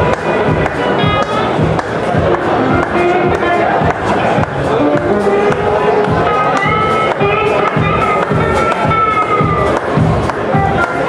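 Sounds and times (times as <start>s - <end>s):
bass guitar: 0.0s - 11.0s
electric guitar long notes: 0.0s - 11.0s
steady drum beat: 0.0s - 11.0s.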